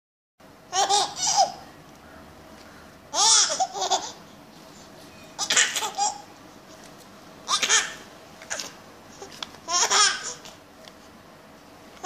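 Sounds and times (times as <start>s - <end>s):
baby laughing: 0.7s - 1.6s, 3.1s - 4.2s, 5.4s - 6.3s, 7.5s - 10.5s.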